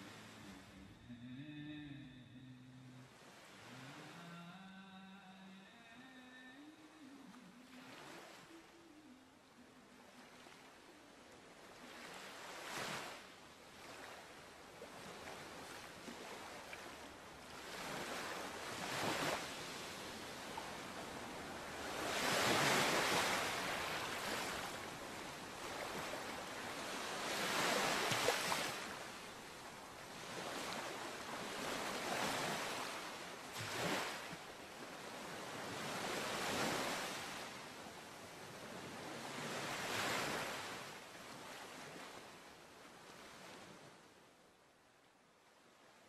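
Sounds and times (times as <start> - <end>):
waves washing in: 0.0 - 44.2.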